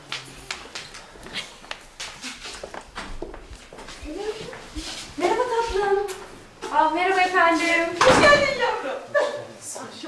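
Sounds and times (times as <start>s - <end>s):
footsteps on hard floor: 0.0s - 8.1s
people talking: 3.9s - 10.0s.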